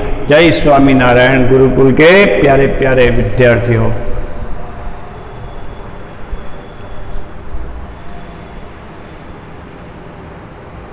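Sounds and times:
steady background noise: 0:00.0 - 0:10.9.

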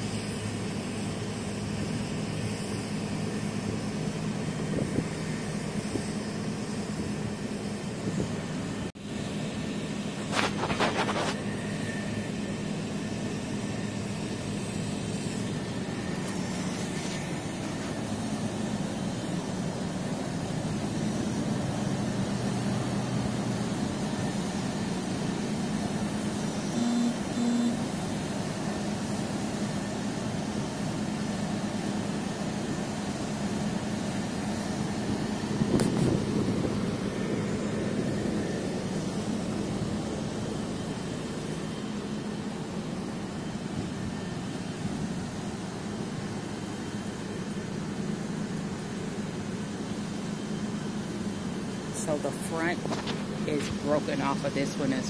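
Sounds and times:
low machine hum: 0:00.0 - 0:55.0
outdoor background noise: 0:00.0 - 0:55.0
short tones: 0:26.8 - 0:27.8.

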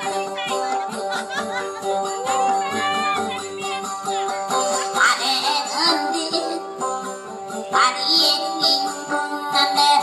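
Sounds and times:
plucked string instrument: 0:00.0 - 0:10.0.

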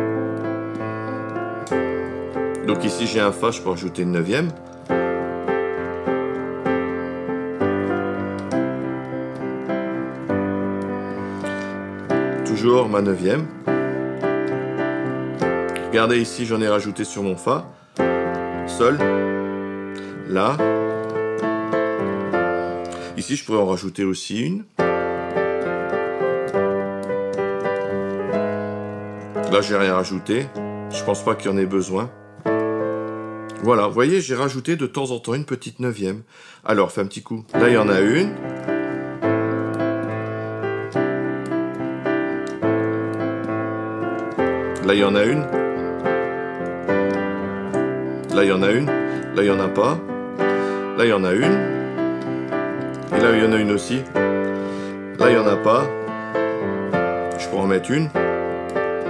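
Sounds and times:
piano chords: 0:00.0 - 0:34.9, 0:36.8 - 0:59.0.

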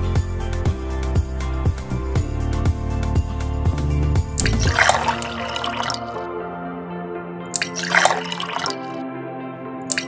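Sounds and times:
light background music: 0:00.0 - 0:10.0
liquid pouring: 0:04.4 - 0:06.2, 0:07.6 - 0:09.0.

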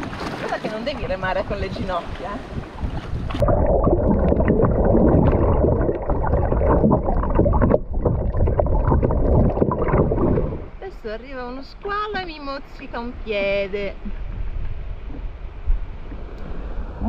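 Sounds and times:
muffled underwater water rushing: 0:00.0 - 0:10.9, 0:13.4 - 0:17.0
bubbles crackling: 0:03.2 - 0:10.8.

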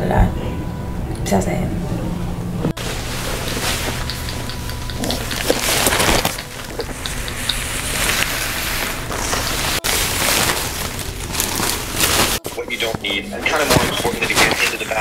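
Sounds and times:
plastic bag rustling: 0:02.8 - 0:04.2, 0:05.0 - 0:15.0
paper gown crinkling: 0:02.8 - 0:15.0.

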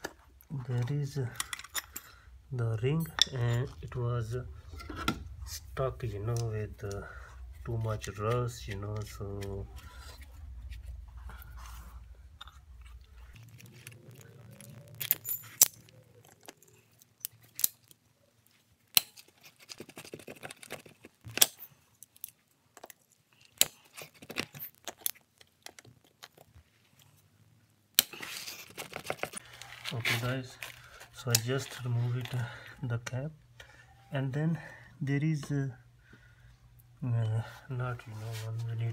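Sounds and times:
hand tools clinking on metal: 0:00.8 - 0:04.0.

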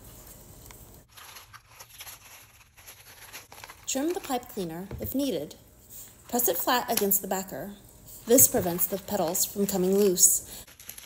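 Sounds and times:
paper rustling: 0:00.1 - 0:05.0, 0:08.3 - 0:11.0.

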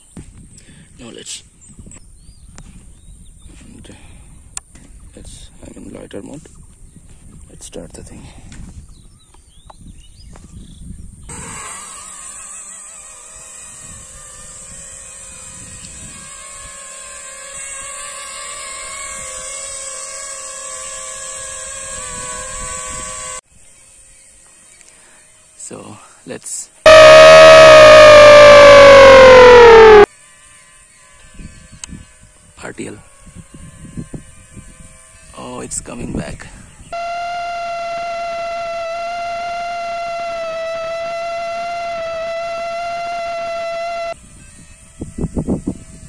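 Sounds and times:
quadcopter motors whining: 0:10.3 - 0:24.8, 0:26.9 - 0:30.1, 0:33.4 - 0:46.0
loud whine falling in pitch: 0:26.9 - 0:30.1, 0:37.0 - 0:44.2.

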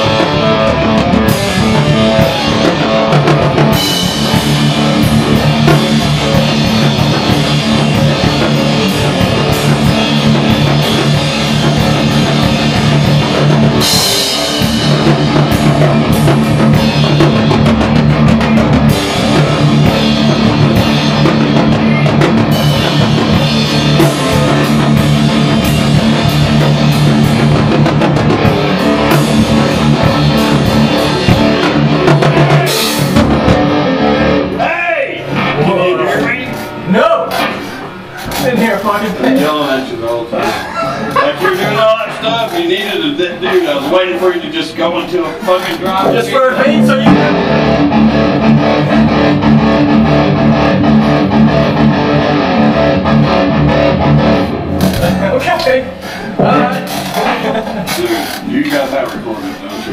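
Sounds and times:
rock band playing live: 0:00.0 - 0:59.9.

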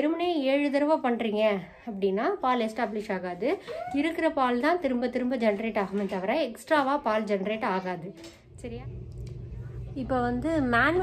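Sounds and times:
woman's voice: 0:00.0 - 0:11.0
low room hum: 0:08.0 - 0:11.0.

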